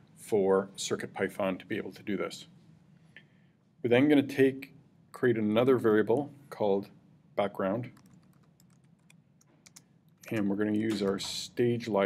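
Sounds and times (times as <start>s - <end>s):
computer keyboard typing: 8.0s - 11.4s.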